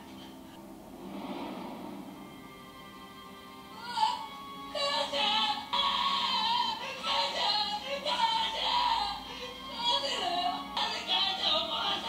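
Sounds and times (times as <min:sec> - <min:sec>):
dramatic music: 0:00.6 - 0:04.8.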